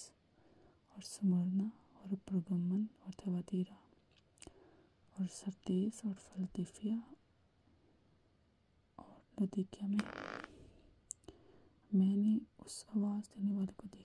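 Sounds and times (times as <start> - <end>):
person reading aloud softly: 0.9 - 3.9, 5.1 - 7.2, 9.0 - 10.5, 11.9 - 14.0.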